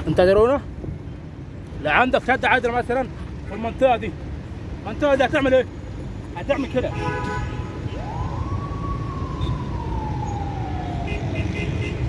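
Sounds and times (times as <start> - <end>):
road traffic rumble: 0.0 - 12.0
siren wailing: 7.7 - 11.8.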